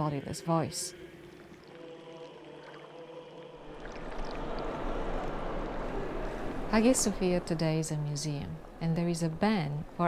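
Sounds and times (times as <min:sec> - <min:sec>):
crowded reverberant interior ambience: 0:00.9 - 0:07.9.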